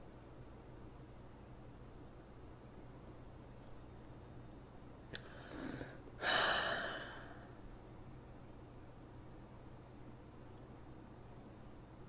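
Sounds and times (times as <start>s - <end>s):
person gasping: 5.2s - 7.5s.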